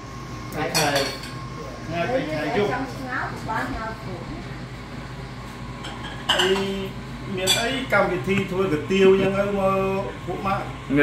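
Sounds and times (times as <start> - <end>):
dishes and cutlery clinking: 0.7 - 1.4, 5.8 - 6.8, 7.4 - 7.9
dishes clattering: 5.8 - 6.8, 7.4 - 7.9.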